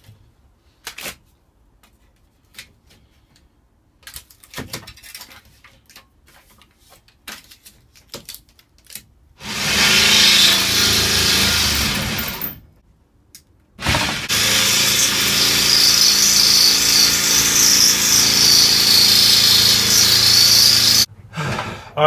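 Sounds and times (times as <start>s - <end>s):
jigsaw cutting steel: 9.4s - 12.6s, 13.8s - 21.1s.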